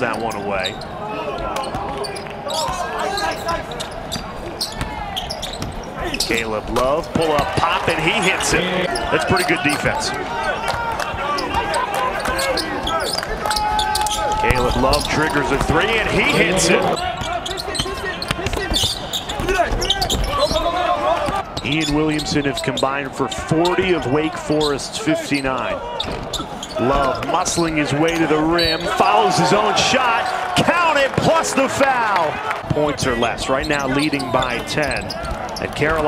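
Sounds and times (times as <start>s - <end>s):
voices on court: 0.0s - 36.0s
background voices: 14.4s - 17.0s.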